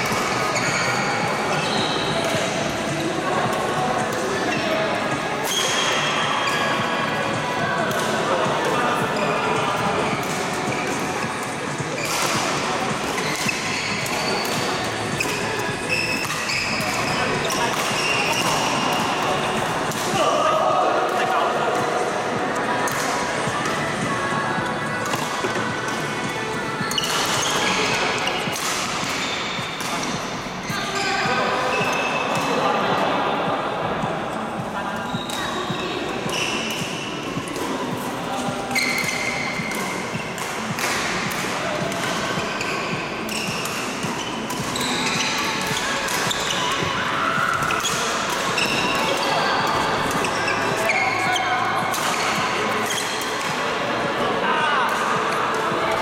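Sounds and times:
shoes squeaking on court floor: 0.0 - 7.0, 8.5 - 19.9, 24.6 - 32.7, 34.4 - 53.4
players' voices: 0.0 - 56.0
racket hitting shuttlecock: 10.2 - 20.2, 26.9 - 30.2, 35.2 - 53.6.

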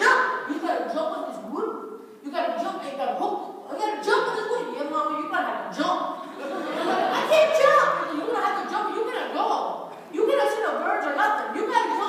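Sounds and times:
woman speaking animatedly: 0.0 - 6.2, 6.9 - 12.0.

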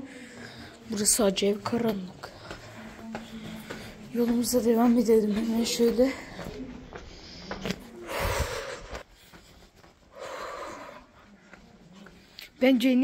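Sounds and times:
heavy breaths close to microphone: 0.0 - 1.2, 2.1 - 4.5, 5.2 - 12.6.

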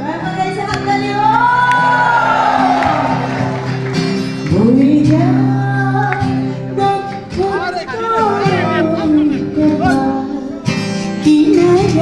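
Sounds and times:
woman singing into a microphone: 0.0 - 2.3, 4.4 - 12.0
acoustic guitar: 0.0 - 12.0.

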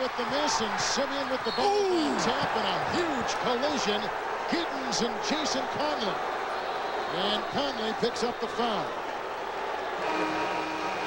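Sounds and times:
arena crowd noise: 0.0 - 11.0
held horn-like chord: 10.0 - 11.0.

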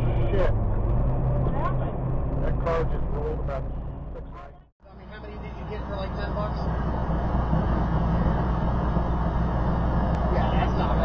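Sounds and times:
truck engine drone from cab: 0.0 - 11.0.

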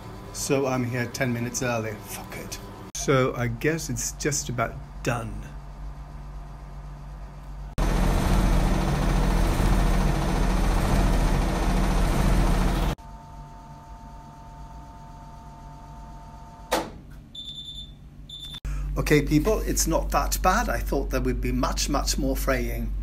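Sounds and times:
two-tone machine hum: 0.0 - 21.4
washing machine drum spinning: 7.8 - 13.0
short high-pitched beeps: 17.4 - 18.6.

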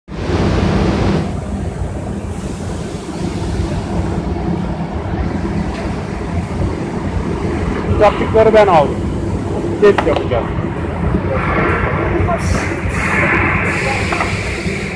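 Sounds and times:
loud hissing noise: 0.1 - 10.2, 10.8 - 14.9
belt conveyor motor hum: 0.1 - 14.9.

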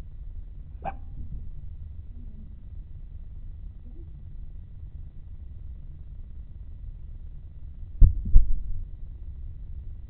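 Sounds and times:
dull low thumps: 0.0 - 5.8, 7.9 - 9.0
steady low rumble: 0.0 - 10.0.

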